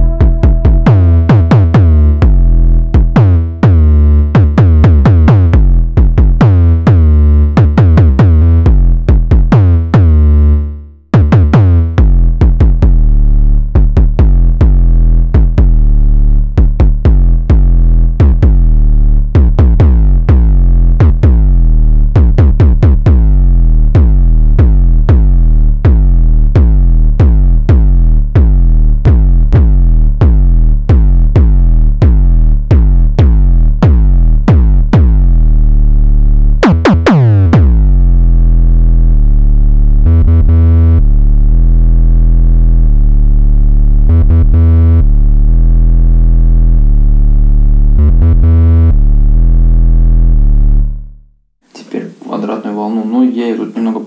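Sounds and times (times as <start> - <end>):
synthesizer kick drum hits: 0.0 - 10.3, 11.1 - 35.8, 36.6 - 38.3, 40.0 - 41.0
sustained synth bass notes: 0.0 - 51.5.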